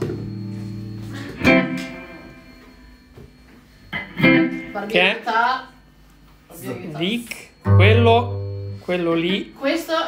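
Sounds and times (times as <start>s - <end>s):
plucked string note: 7.7s - 8.9s.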